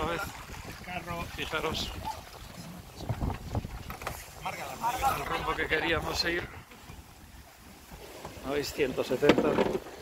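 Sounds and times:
wind buffeting microphone: 0.0s - 8.7s.

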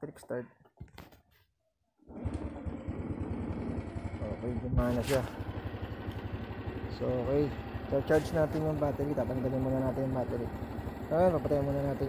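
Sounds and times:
motorcycle engine starting and idling: 2.1s - 12.0s.

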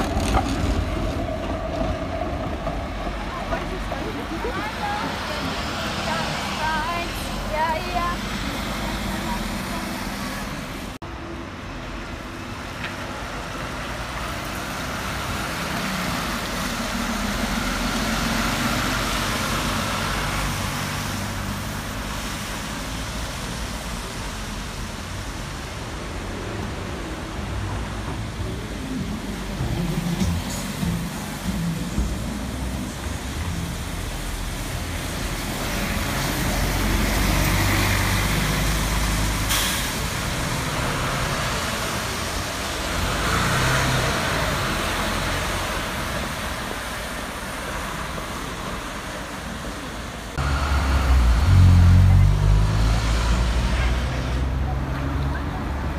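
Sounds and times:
bus engines running: 0.0s - 55.9s
tyres hissing on wet road: 0.0s - 55.9s.

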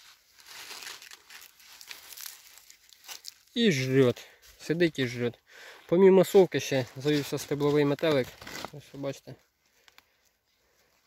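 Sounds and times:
corn husk crinkling and rustling: 0.0s - 5.2s, 6.3s - 10.0s.

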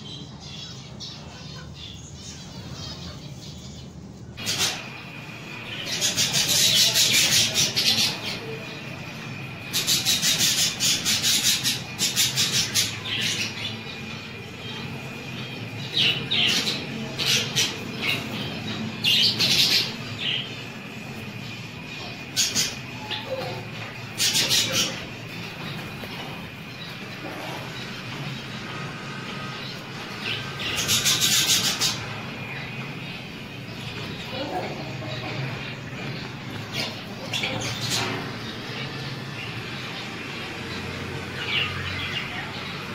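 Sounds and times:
birds chirping: 0.0s - 42.9s
steady low hum: 0.0s - 42.9s.

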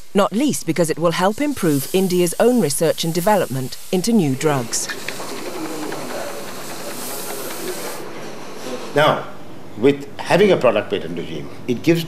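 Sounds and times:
steady laboratory hiss: 0.0s - 12.0s.

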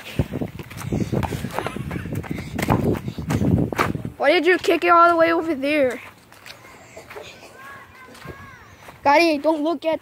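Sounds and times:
footsteps running on grass: 0.2s - 10.0s.

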